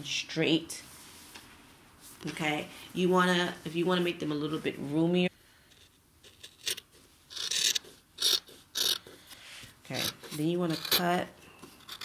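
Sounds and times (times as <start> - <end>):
cloth swishing: 0.8 - 5.2.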